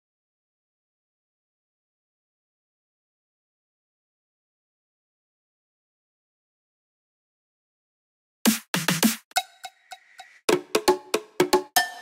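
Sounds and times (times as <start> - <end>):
cowbell-like percussion hits: 9.3 - 12.0.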